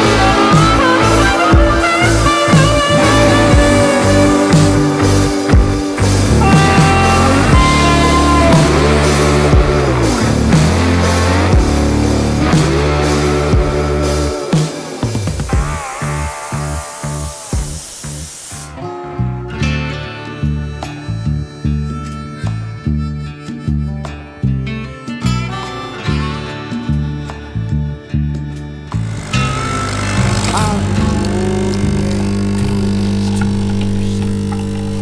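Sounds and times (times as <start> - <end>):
background music with steady beat: 0.0 - 18.9
spray gun hissing: 16.0 - 18.8, 29.2 - 35.0
coffee machine pump buzzing: 28.9 - 35.0.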